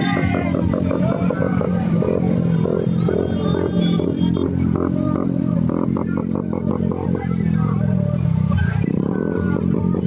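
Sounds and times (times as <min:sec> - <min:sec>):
motorcycles riding past: 0:00.0 - 0:10.0.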